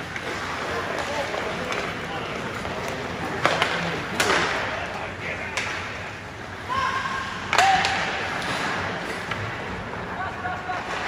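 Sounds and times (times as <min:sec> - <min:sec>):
hockey stick or puck crack: 0:00.0 - 0:04.7, 0:05.5 - 0:06.0, 0:07.5 - 0:09.6.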